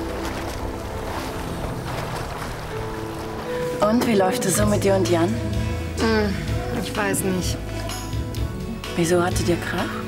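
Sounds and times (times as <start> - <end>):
even wash of noise: 0.0 - 4.0
background music: 0.0 - 10.0
low musical tone: 0.0 - 10.0.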